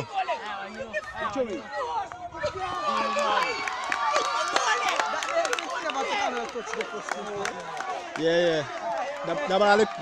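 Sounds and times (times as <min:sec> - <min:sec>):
crowd shouting: 0:00.0 - 0:10.0.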